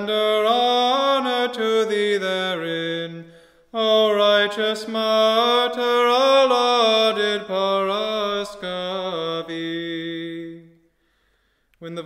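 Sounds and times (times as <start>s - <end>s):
man chanting a hymn: 0.0s - 10.7s.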